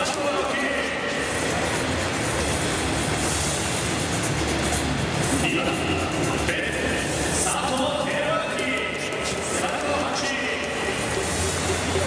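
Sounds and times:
music over loudspeakers: 0.0s - 12.0s
stadium crowd din: 0.0s - 12.0s.

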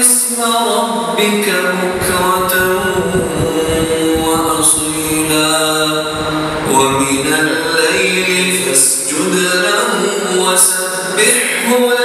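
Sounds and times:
man chanting through loudspeakers: 0.0s - 12.0s
low rumble: 2.0s - 9.1s.

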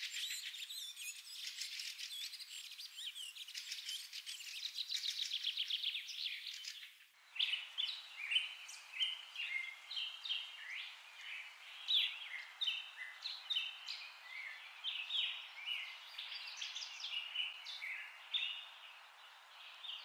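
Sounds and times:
birds chirping and whistling: 0.0s - 6.8s
steady background hiss: 0.0s - 20.0s.

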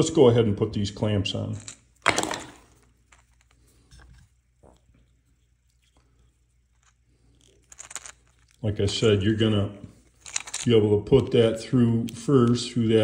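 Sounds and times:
small parts clicking and tapping: 1.5s - 5.2s, 6.6s - 9.2s, 10.2s - 11.4s.

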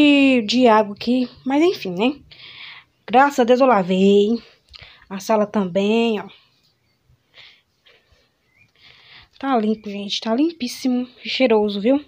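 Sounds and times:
faint short breaths: 2.3s - 3.0s, 4.4s - 5.1s, 7.2s - 9.4s.

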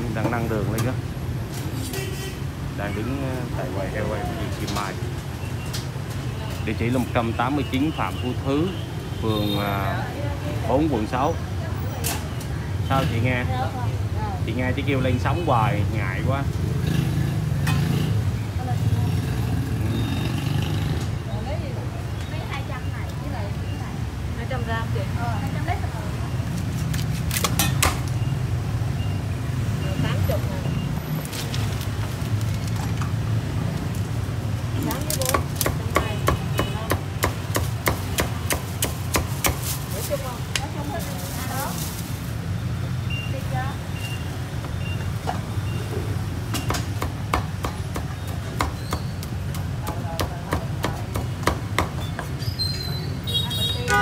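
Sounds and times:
cleaver chopping on wooden block: 35.1s - 39.7s, 46.5s - 52.4s.

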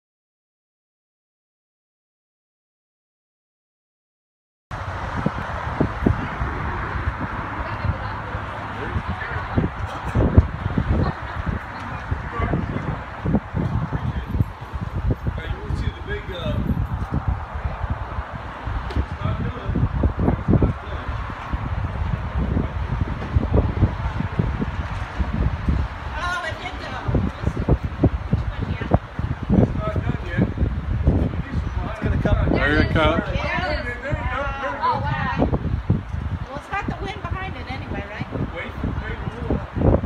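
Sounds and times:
wind rumble and hiss on microphone: 4.7s - 40.0s.

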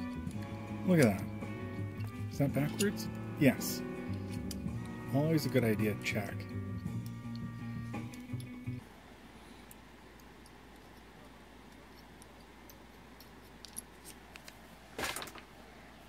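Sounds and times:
background music: 0.0s - 8.8s.

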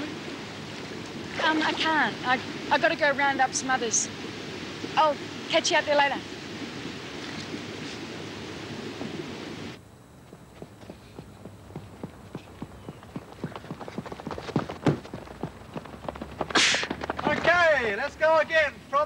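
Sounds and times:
wind hissing: 0.0s - 18.2s
footfalls of people running: 10.2s - 18.2s
short sharp hiss: 16.5s - 16.9s.

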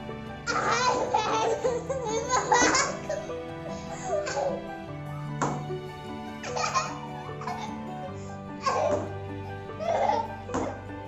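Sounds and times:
background music: 0.0s - 11.0s
girl laughing: 0.6s - 3.3s, 6.4s - 7.8s.

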